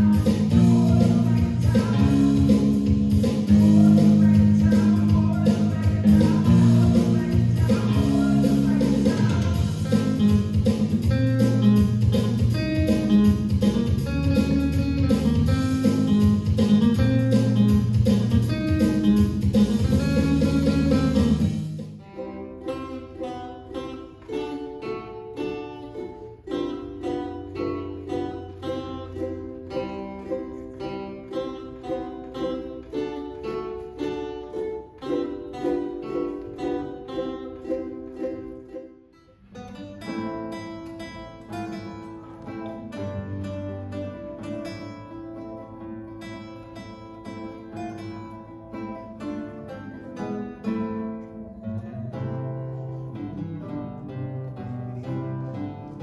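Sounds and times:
loud electric guitar: 0.0s - 22.0s
acoustic guitar picking: 0.0s - 56.0s
ukulele picking a tune: 0.0s - 56.0s.

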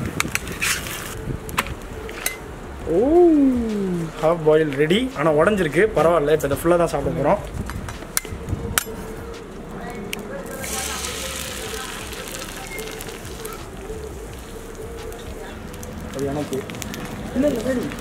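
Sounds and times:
egg sizzling in hot oil: 10.5s - 13.7s.

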